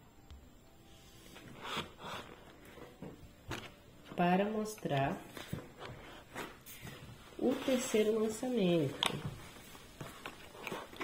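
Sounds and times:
hand handling bottles: 0:01.4 - 0:11.0.

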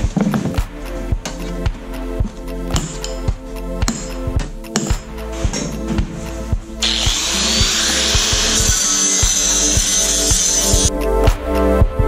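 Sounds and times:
background music with steady beat: 0:00.0 - 0:12.0
angle grinder grinding steel: 0:06.8 - 0:10.9.

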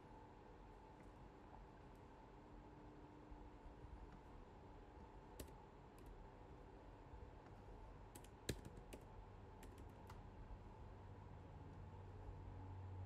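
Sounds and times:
keyboard key clicks: 0:05.4 - 0:06.1, 0:08.2 - 0:09.0, 0:09.6 - 0:10.2.

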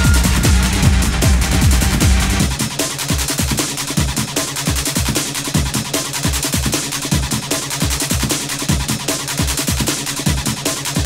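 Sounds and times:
techno music: 0:00.0 - 0:11.0.

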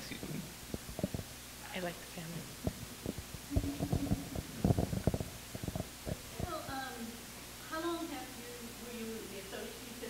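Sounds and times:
microphone handling bumps and rubs: 0:02.6 - 0:06.6
person speaking: 0:03.5 - 0:05.0.

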